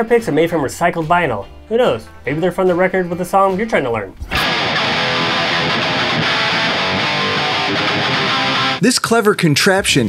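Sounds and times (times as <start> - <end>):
distorted electric guitar chords: 4.3 - 8.8.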